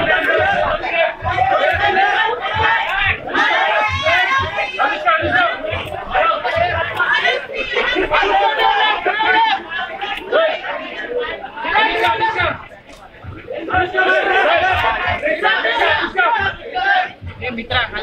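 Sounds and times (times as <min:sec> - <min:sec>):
chatter of overlapping voices: 0:00.0 - 0:18.0.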